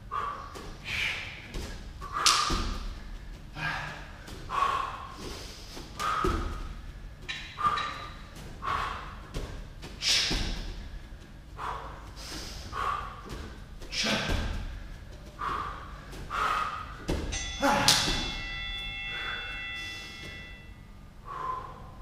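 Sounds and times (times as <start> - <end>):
feet thudding on gym mats: 0.0 - 20.7
heavy rhythmic breathing: 0.0 - 22.0.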